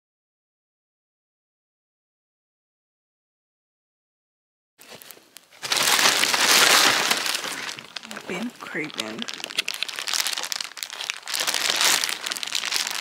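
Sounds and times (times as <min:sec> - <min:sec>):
plastic bag crinkling: 0:04.8 - 0:13.0.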